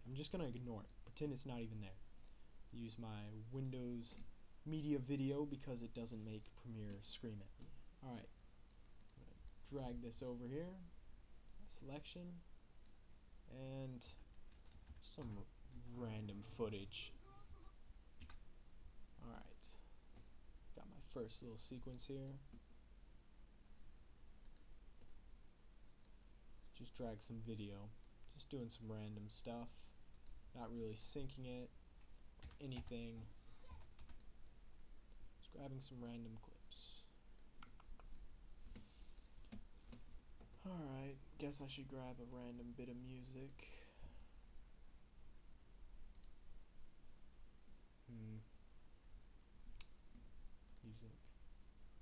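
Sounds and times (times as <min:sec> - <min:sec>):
low steady hum: 0:00.0 - 0:52.0
computer mouse clicks: 0:46.1 - 0:46.4.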